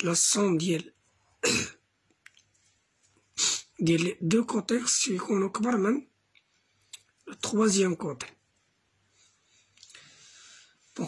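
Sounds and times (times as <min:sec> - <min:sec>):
person coughing: 0:01.4 - 0:01.8.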